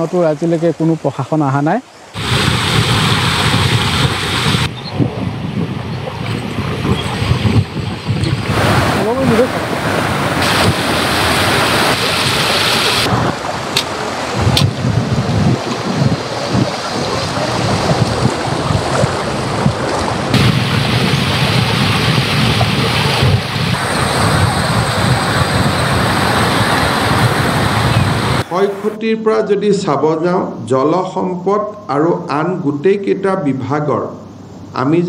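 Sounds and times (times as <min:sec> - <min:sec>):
floodwater rushing and roaring: 0:00.0 - 0:29.0.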